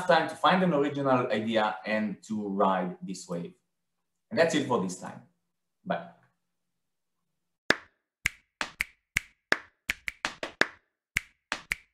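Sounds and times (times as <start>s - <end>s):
sharp dry claps: 7.7s - 11.9s.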